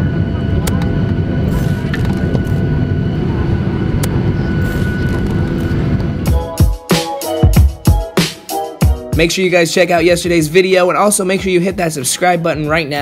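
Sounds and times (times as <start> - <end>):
airliner engines droning: 0.0 - 6.6.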